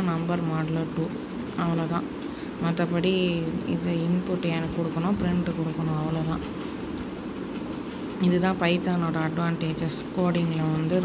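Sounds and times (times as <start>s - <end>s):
person speaking: 0.0s - 2.0s, 2.6s - 6.5s, 8.1s - 11.0s
steady background noise: 0.0s - 11.0s.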